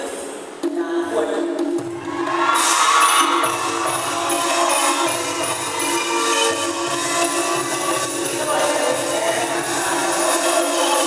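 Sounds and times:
ensemble melody over tuned percussion: 0:03.2 - 0:09.8.

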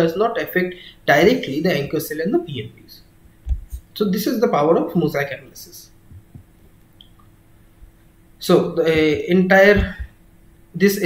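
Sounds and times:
steady low hum: 0:00.0 - 0:11.0
soft dull thumps: 0:03.4 - 0:03.9, 0:06.1 - 0:06.8, 0:08.8 - 0:10.2.

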